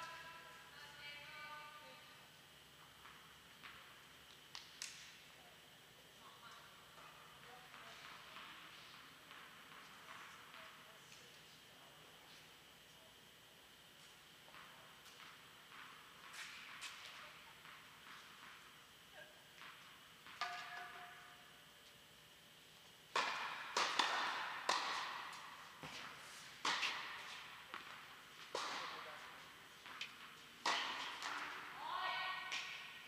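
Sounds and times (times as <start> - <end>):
tennis balls struck and bouncing: 19.6 - 21.5, 23.1 - 33.0.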